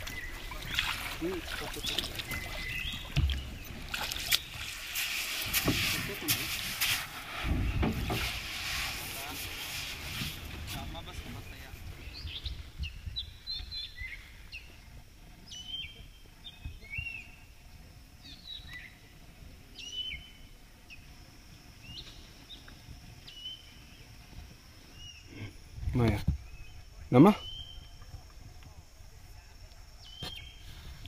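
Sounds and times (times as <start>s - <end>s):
birds chirping: 0.0s - 5.0s, 10.8s - 28.4s, 29.4s - 30.9s.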